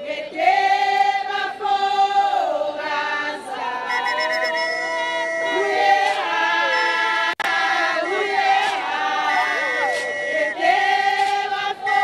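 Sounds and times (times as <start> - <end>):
women singing together: 0.0 - 12.0
high vocal trill: 3.9 - 11.4.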